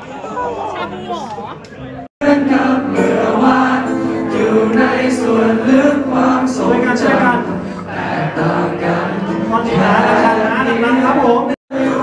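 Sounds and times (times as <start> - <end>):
acoustic guitar: 2.2 - 12.0
person singing into microphone: 2.2 - 12.0.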